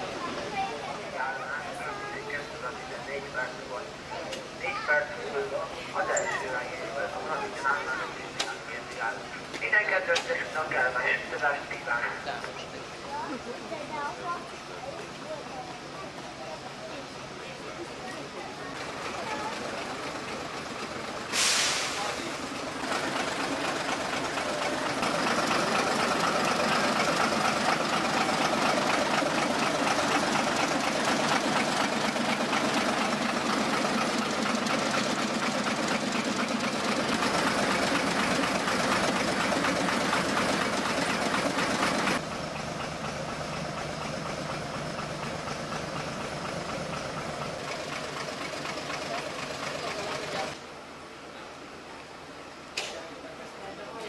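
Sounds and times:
people's voices: 0.0s - 42.2s
train engine running: 0.0s - 51.0s.

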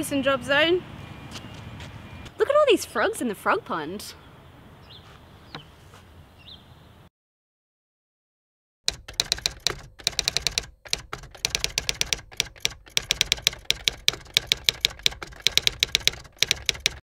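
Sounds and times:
typewriter key clacks: 8.9s - 17.0s.

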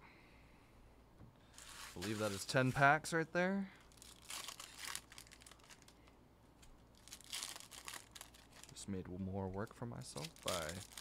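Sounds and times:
foil wrappers crinkling: 1.5s - 2.8s, 3.8s - 6.1s, 6.9s - 8.8s, 10.0s - 11.0s.

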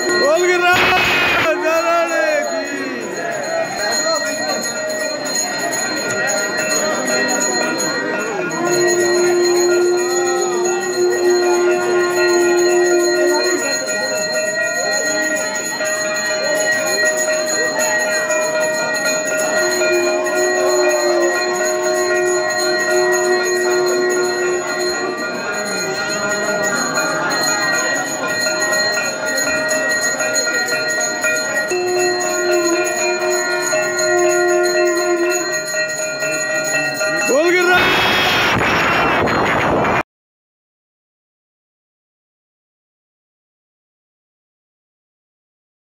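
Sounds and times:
temple bells ringing: 0.0s - 40.0s.

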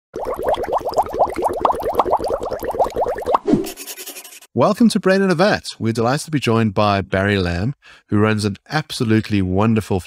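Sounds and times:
cartoon bubbling plops: 0.1s - 3.6s.

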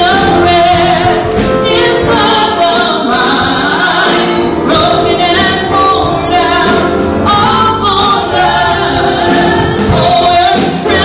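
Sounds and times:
accompanying instruments: 0.0s - 11.0s
church choir singing gospel: 0.0s - 11.0s.

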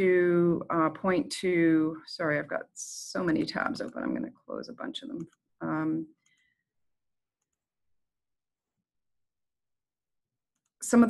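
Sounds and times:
woman speaking: 0.0s - 6.0s.

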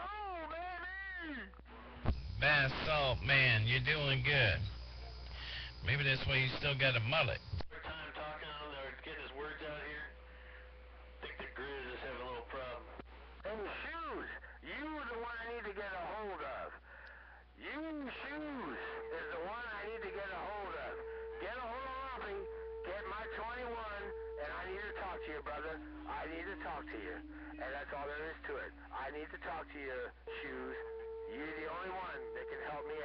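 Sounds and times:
man talking over radio speaker: 0.0s - 33.0s
steady low hum: 0.3s - 33.0s
steady tone dropping in pitch: 20.4s - 33.0s.

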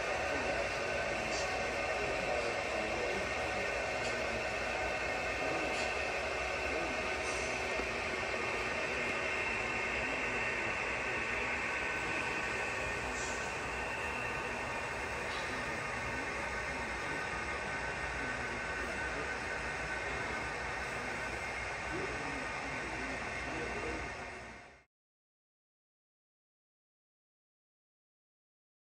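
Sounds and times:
model train rolling: 0.0s - 24.6s.

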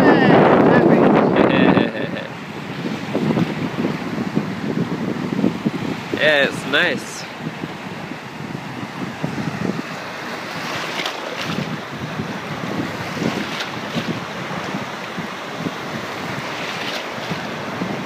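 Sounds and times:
wind buffeting microphone: 0.0s - 18.0s
water splashes: 0.4s - 18.0s
small waves breaking in surf: 1.4s - 18.0s.

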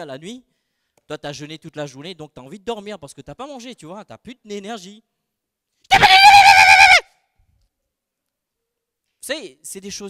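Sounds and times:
man wailing high-pitched: 5.9s - 7.0s.

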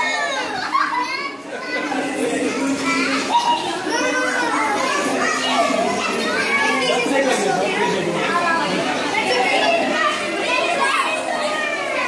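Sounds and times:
children calling out and chattering: 0.0s - 12.0s.

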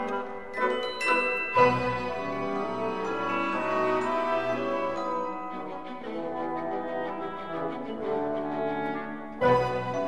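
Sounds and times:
orchestral music with brass chords: 0.0s - 10.0s.

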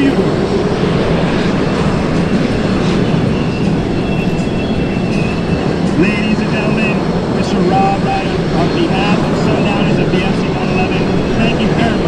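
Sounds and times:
high jet whine: 0.0s - 12.0s
jet engines rumbling: 0.0s - 12.0s.

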